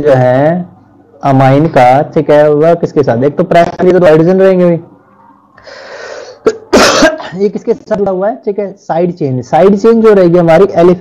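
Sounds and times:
man inhaling: 5.6s - 6.5s
man sneezing: 6.4s - 7.4s.

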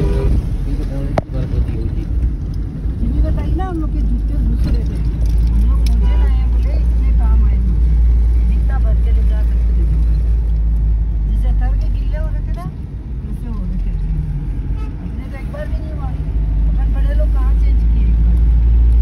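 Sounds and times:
car interior rumble: 0.0s - 19.0s.

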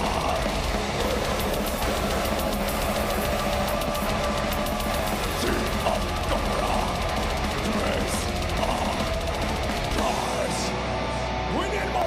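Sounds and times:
fast dense drumming: 0.0s - 11.1s
distorted electric guitars: 0.0s - 12.0s.

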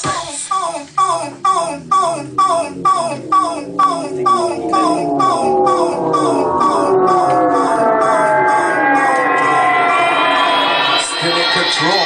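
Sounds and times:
electro house music: 0.0s - 12.0s
siren-like synth sweep: 1.6s - 12.0s.

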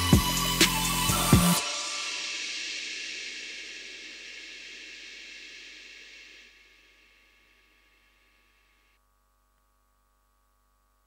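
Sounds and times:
backing music: 0.0s - 3.4s
cymbal crash ringing: 0.0s - 8.2s.

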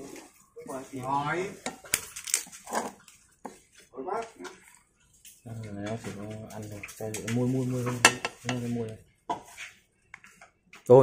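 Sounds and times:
spatula stirring in metal pot: 0.0s - 10.4s
spatula clacking on pot: 7.1s - 8.7s.

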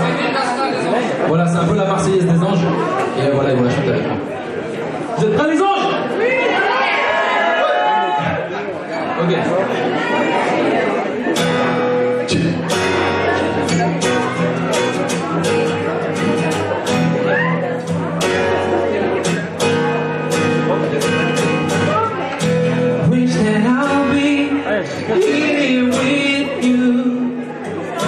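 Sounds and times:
acoustic guitar strumming: 11.2s - 28.0s.

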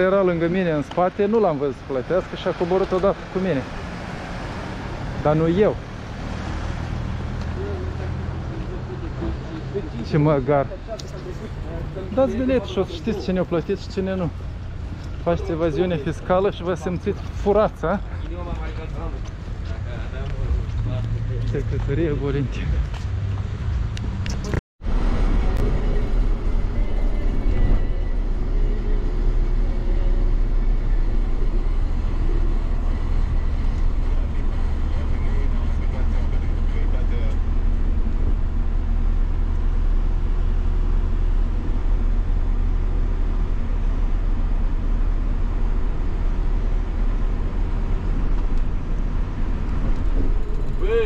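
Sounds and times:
engine and road rumble in cabin: 0.0s - 51.0s.

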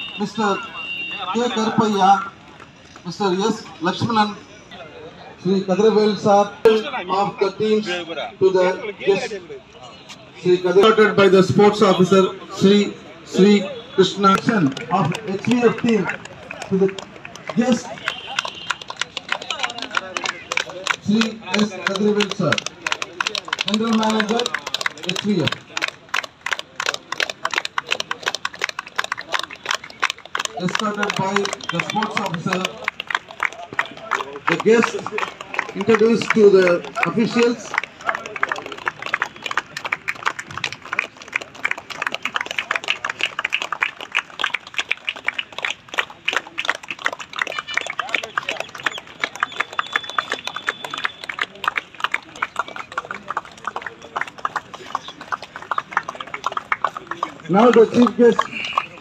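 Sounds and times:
people clapping: 0.0s - 4.2s, 10.4s - 59.0s.

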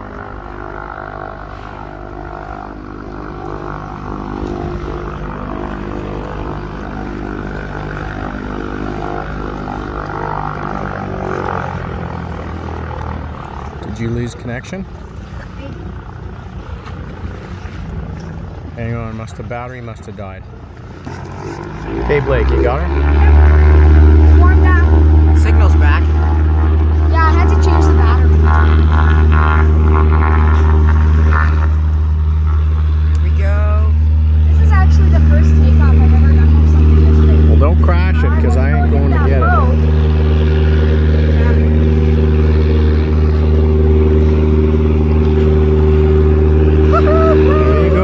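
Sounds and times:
distant propeller engine droning: 0.0s - 48.0s.

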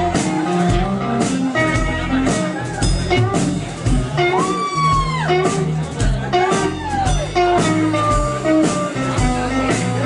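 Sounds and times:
drums keeping steady beat: 0.0s - 10.0s
electric guitar lead notes: 0.0s - 10.0s.

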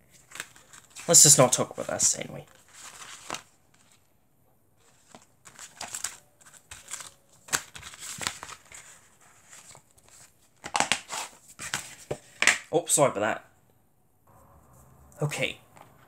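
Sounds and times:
paper booklet rustling: 0.0s - 4.1s, 4.8s - 12.7s.

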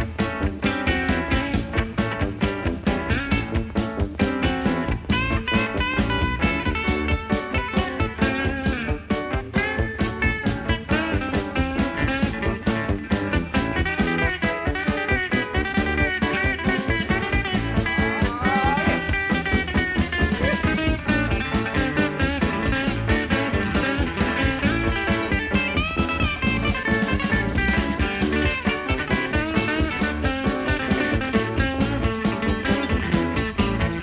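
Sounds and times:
bass guitar: 0.0s - 34.0s
drum kit beat: 0.0s - 34.0s
electric guitar lead: 0.0s - 34.0s.

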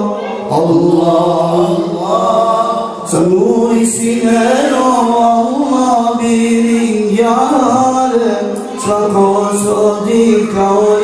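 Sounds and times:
men singing devotional chant: 0.0s - 11.0s.

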